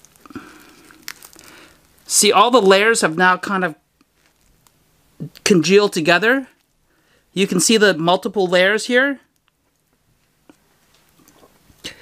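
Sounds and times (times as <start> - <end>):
pizza crust crackling: 0.0 - 12.0.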